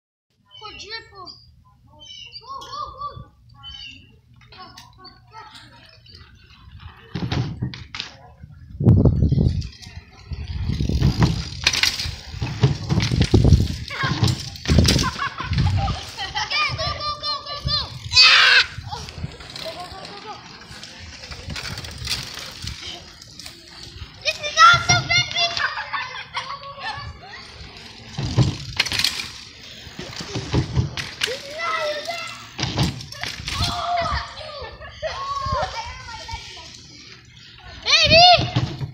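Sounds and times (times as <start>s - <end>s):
children talking and calling out: 0.4s - 38.9s.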